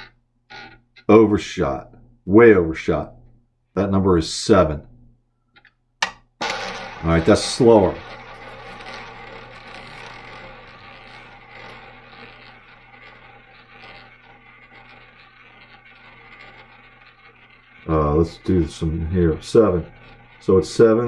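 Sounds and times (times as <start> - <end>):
roulette ball rolling whir: 0.0 - 1.1, 5.6 - 21.0.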